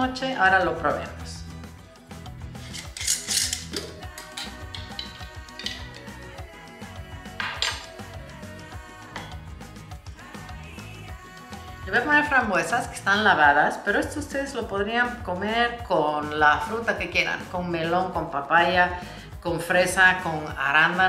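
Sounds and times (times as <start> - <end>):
background music: 0.0 - 21.0
jar lid twisting off: 2.6 - 6.0
glass clinks and scrapes: 2.6 - 6.2.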